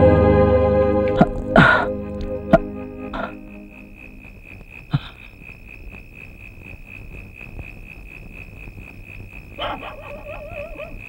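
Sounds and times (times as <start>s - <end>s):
crickets chirring: 1.0s - 11.0s.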